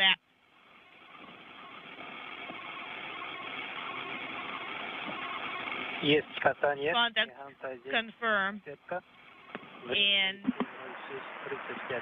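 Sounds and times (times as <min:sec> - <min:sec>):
radio channel hiss: 0:00.0 - 0:12.0.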